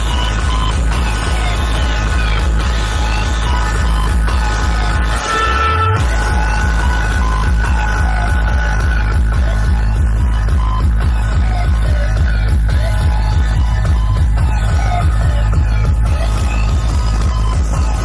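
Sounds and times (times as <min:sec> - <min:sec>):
electronic dance music: 0:00.0 - 0:18.0
heavy pulsing bass: 0:00.0 - 0:18.0.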